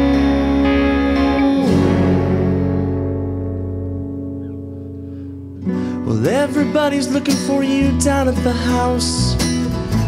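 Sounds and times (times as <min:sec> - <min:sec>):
rock band guitars and bass: 0:00.0 - 0:10.0.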